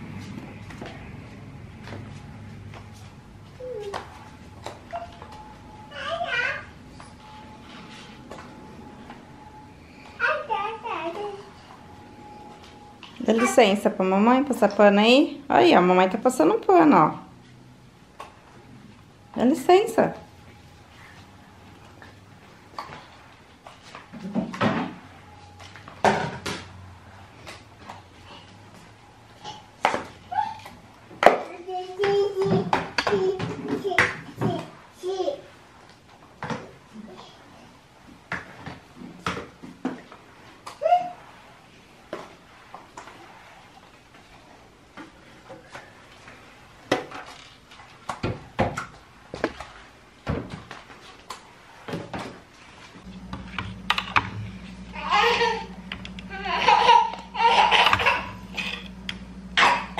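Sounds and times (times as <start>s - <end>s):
small child babbling: 55.0s - 55.7s.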